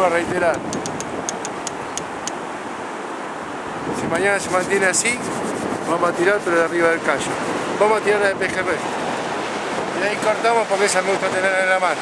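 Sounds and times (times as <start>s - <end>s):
surf washing: 0.0s - 12.0s
wind: 0.0s - 12.0s.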